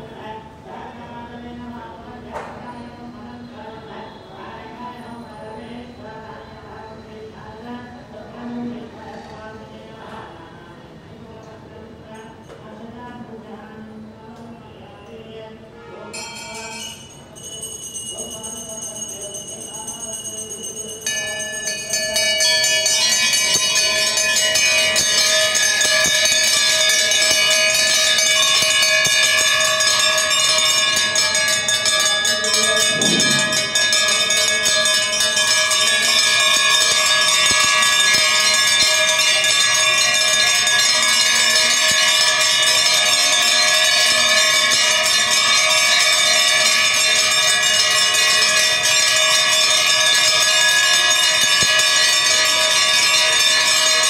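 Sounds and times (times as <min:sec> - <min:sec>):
temple bells ringing: 0:15.8 - 0:54.0.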